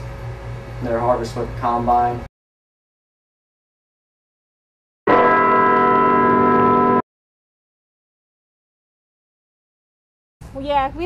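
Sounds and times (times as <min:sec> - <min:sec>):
bell-like electronic chord: 0:05.1 - 0:07.0.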